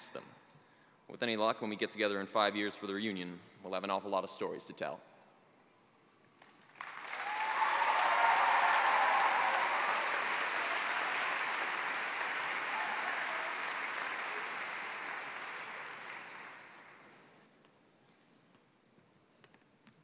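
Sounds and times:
large audience applauding: 0:06.4 - 0:17.3
audience cheering: 0:06.8 - 0:17.2.

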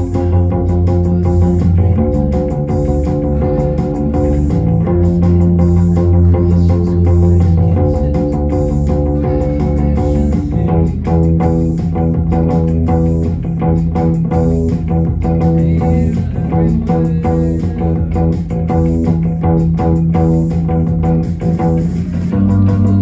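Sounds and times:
plucked bass guitar: 0:00.0 - 0:23.0
rock band playing: 0:00.0 - 0:23.0.

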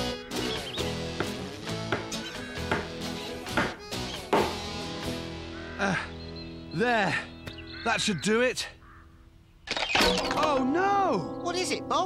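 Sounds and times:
background music: 0:00.0 - 0:08.0, 0:10.0 - 0:12.0.

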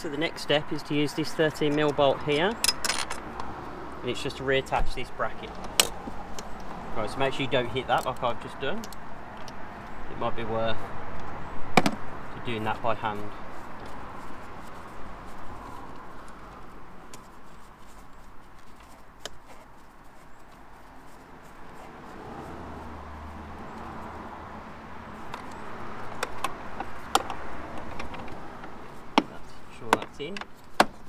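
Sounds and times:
gloved hands knocking on engine parts: 0:26.1 - 0:31.0.

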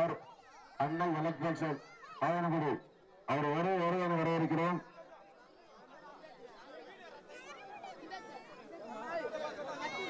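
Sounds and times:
man announcing into a microphone: 0:00.0 - 0:00.2, 0:00.8 - 0:04.9
faint crowd chatter: 0:00.0 - 0:10.0.

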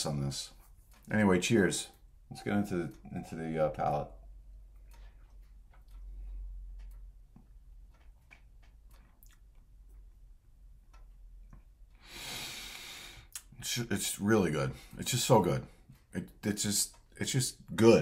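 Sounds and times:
mouth clicks and lip smacks: 0:04.6 - 0:10.2, 0:13.3 - 0:13.6.

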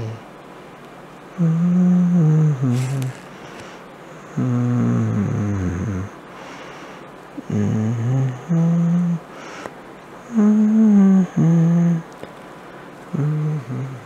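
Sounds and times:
person humming low: 0:01.3 - 0:03.5, 0:04.2 - 0:06.2, 0:07.4 - 0:09.3, 0:10.2 - 0:12.1, 0:13.1 - 0:14.0.

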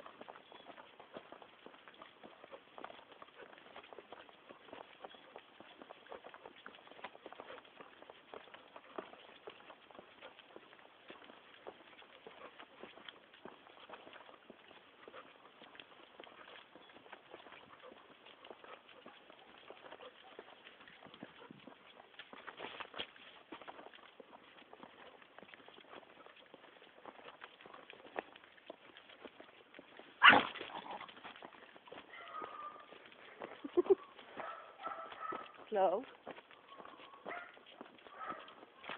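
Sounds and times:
footsteps on paving stones: 0:00.0 - 0:38.9.

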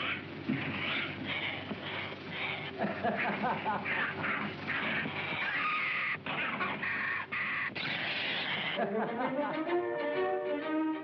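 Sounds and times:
harsh raspy animal squawks: 0:00.0 - 0:08.8
violin music: 0:09.1 - 0:11.0.

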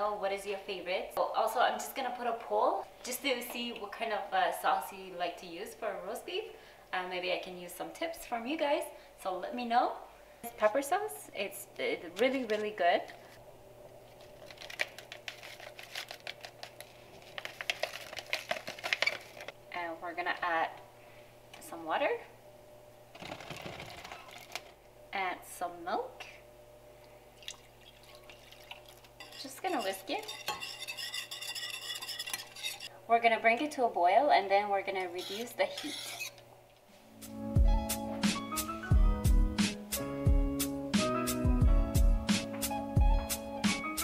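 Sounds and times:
packet crinkling: 0:14.1 - 0:19.6, 0:23.1 - 0:24.8
wire whisk scraping metal pan: 0:29.2 - 0:32.9, 0:35.2 - 0:36.4.

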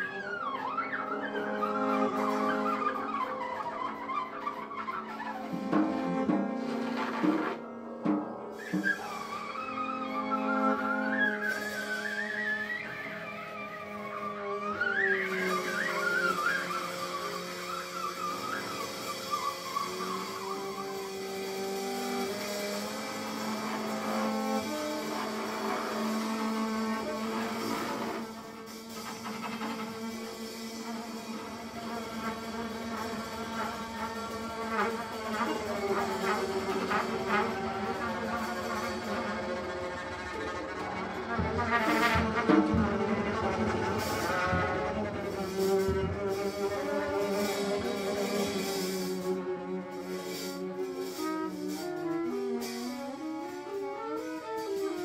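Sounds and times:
flute trilling: 0:00.0 - 0:55.0
trumpet long tones: 0:00.0 - 0:55.0.

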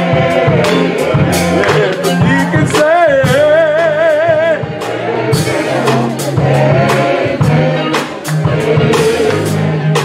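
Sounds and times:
band with bass and beat: 0:00.0 - 0:10.0
voices singing gospel: 0:00.0 - 0:10.0.

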